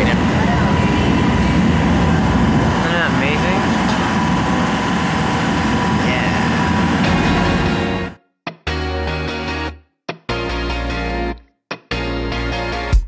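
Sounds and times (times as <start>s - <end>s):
boat motor droning: 0.0s - 8.2s.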